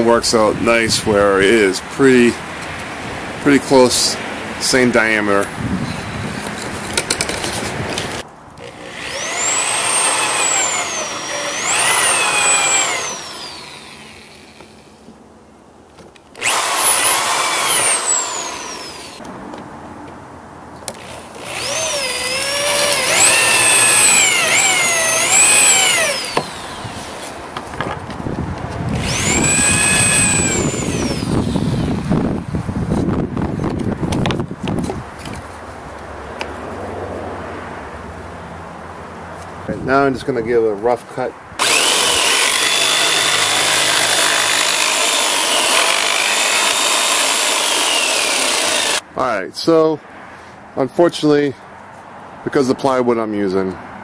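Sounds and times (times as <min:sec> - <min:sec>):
hole saw cutting wood: 0:07.1 - 0:14.9, 0:16.4 - 0:19.2, 0:20.9 - 0:27.4, 0:29.0 - 0:32.0, 0:41.6 - 0:49.0
electric drill motor whine: 0:08.6 - 0:14.7, 0:16.4 - 0:19.2, 0:21.0 - 0:27.4, 0:29.0 - 0:31.9, 0:41.6 - 0:49.0.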